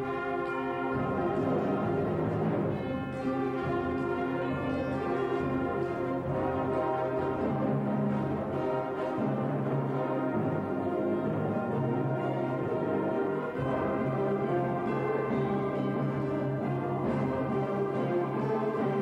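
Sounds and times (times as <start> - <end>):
concert band playing slow piece: 0.0 - 19.0.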